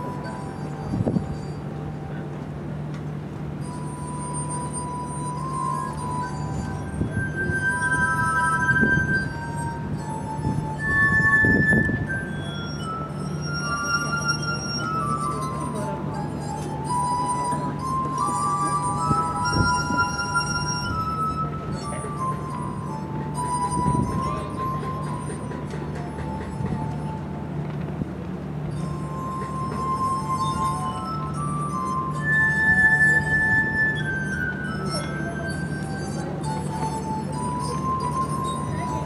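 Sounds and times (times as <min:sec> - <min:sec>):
glass harp ringing notes: 0:00.0 - 0:39.0
steady low hum: 0:00.0 - 0:39.0.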